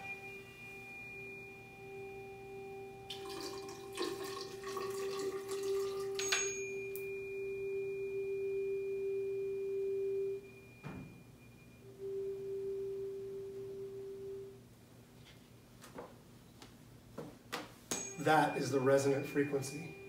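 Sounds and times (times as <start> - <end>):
tuning fork pure tone: 0.0 - 14.7, 17.9 - 20.0.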